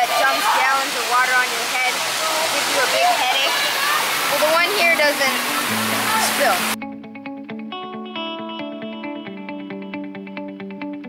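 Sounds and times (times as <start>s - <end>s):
fountains splashing water: 0.0s - 6.8s.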